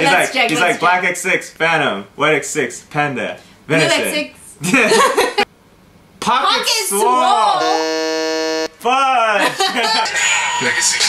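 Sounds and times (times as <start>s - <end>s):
voices: 0.0s - 2.4s, 6.2s - 8.0s
game show buzzer: 7.6s - 8.8s.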